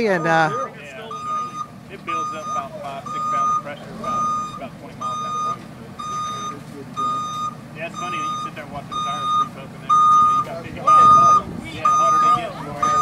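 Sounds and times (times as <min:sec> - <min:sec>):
low engine rumble: 0:00.0 - 0:13.0
reversing alarm beeping: 0:00.0 - 0:13.0.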